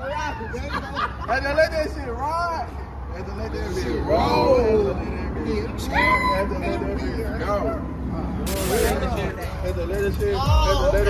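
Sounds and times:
loud hiss: 0:08.5 - 0:09.0.

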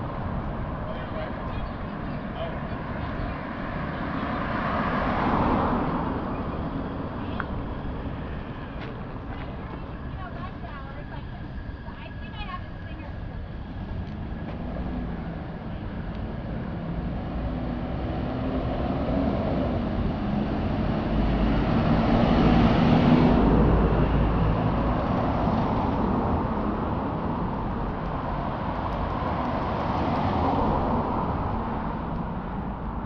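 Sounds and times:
car passing: 0:00.0 - 0:33.0
vehicle going by: 0:00.9 - 0:10.5, 0:14.2 - 0:33.0.

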